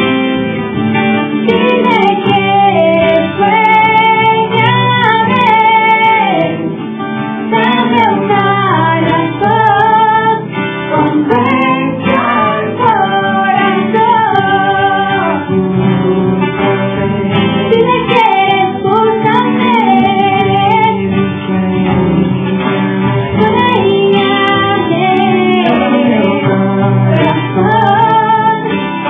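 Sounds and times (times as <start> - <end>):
strummed acoustic guitars: 0.0 - 29.0
woman singing: 1.4 - 6.8, 7.5 - 16.1, 17.6 - 21.2, 23.3 - 29.0.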